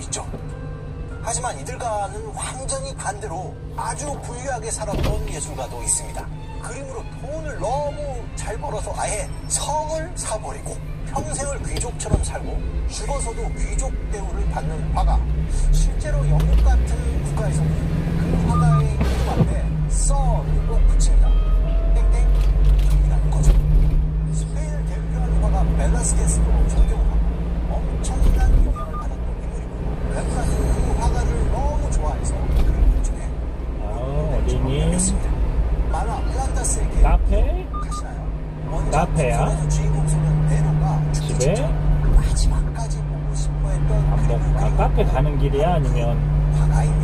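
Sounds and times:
truck engine and road rumble: 0:00.0 - 0:47.0
indistinct voices from radio: 0:35.9 - 0:47.0.

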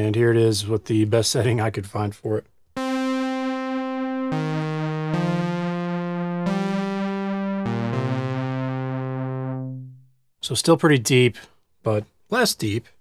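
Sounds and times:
synthesizer pad chords with chorus: 0:02.8 - 0:10.0.

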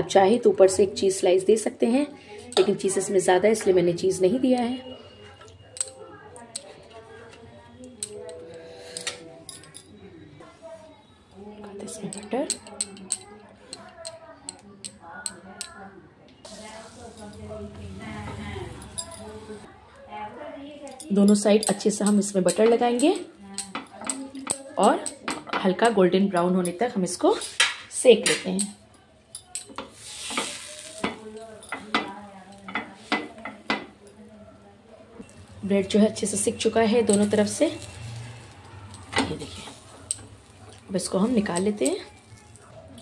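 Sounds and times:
butter sputtering on hot pan: 0:29.8 - 0:33.9, 0:35.2 - 0:42.7.

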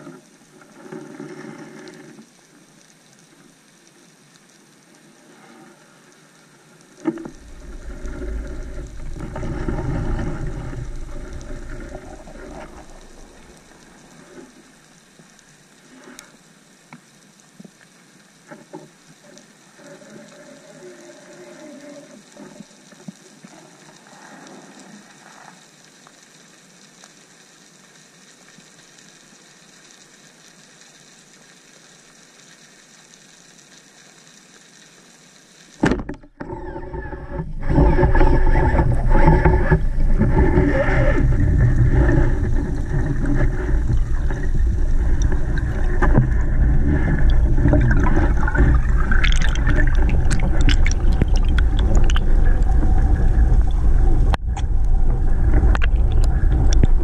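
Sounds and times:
underwater hiss: 0:00.0 - 0:35.9, 0:36.5 - 0:57.0
churning water: 0:07.0 - 0:14.8, 0:35.8 - 0:57.0.

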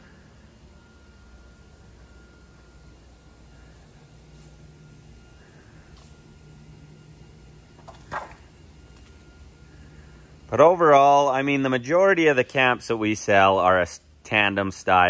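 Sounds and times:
faint high whine: 0:00.0 - 0:15.0
steady low hum: 0:00.0 - 0:15.0.

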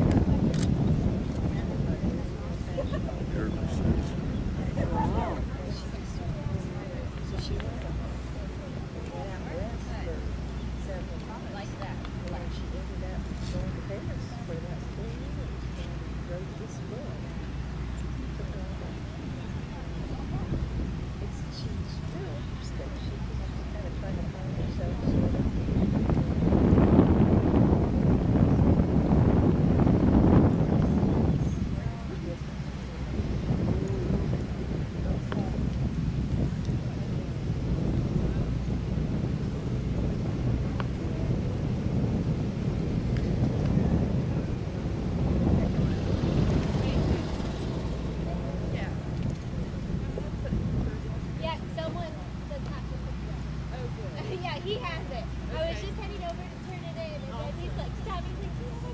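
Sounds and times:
indistinct voices: 0:00.0 - 0:58.9
wind on microphone: 0:00.0 - 0:58.9.

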